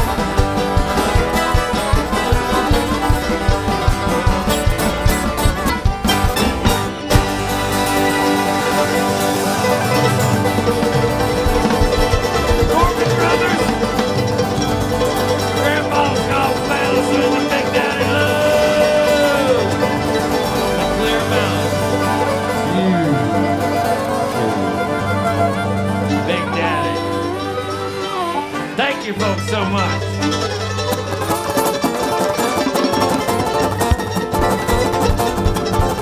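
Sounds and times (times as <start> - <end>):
bluegrass band playing: 0.0 - 36.0.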